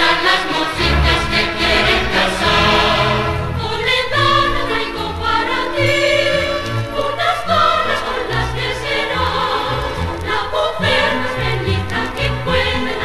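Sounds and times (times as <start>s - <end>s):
mixed chorus singing: 0.0s - 13.0s
symphony orchestra playing: 0.5s - 5.6s.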